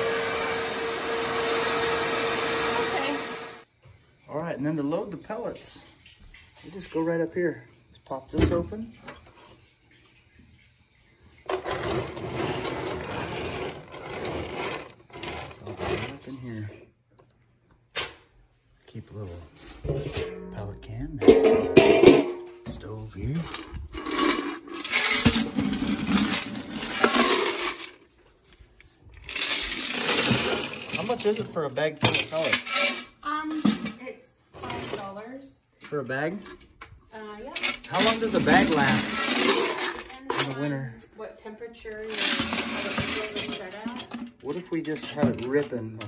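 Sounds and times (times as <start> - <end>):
pellets pouring into hopper: 11.6 - 16.2, 24.0 - 27.9, 29.3 - 31.4, 37.9 - 40.0
wood pellets rattling in can: 23.3 - 28.0, 29.2 - 33.0, 37.6 - 40.6.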